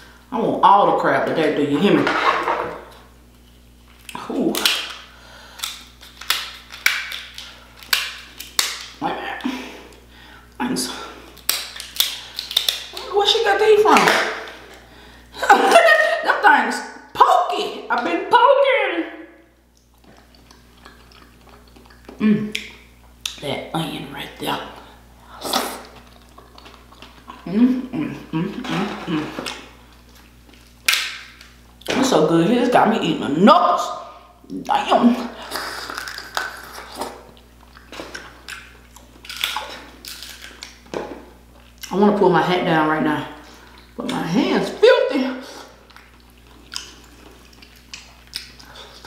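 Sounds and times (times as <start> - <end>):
person mumbling: 27.4 - 29.4.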